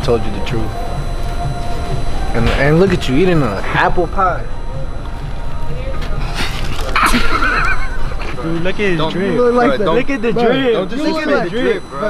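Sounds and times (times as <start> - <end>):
high quavering whinny: 0.0 - 12.0.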